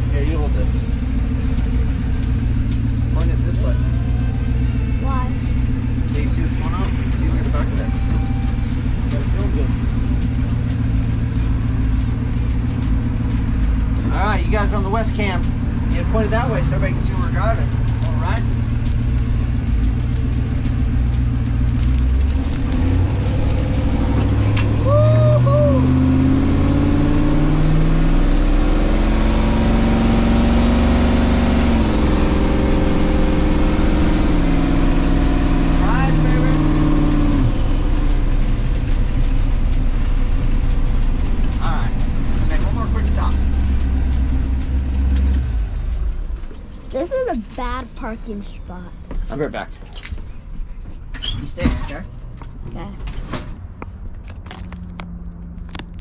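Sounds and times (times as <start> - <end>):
motorhome engine drone accelerating: 0.0 - 56.0.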